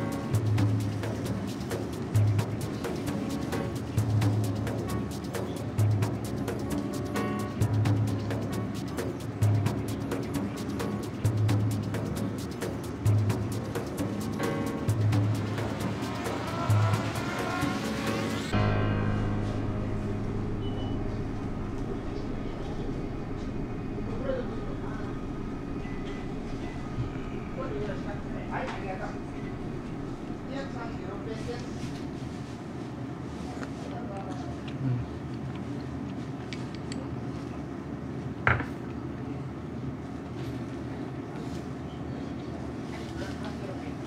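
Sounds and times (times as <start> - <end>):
low rumble of ventilation: 0.0 - 44.0
faint voices: 9.0 - 18.6, 21.2 - 35.8.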